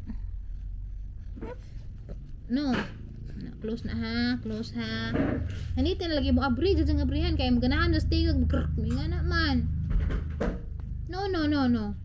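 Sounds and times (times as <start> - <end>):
steady low hum: 0.0 - 12.0
person speaking: 2.4 - 9.7.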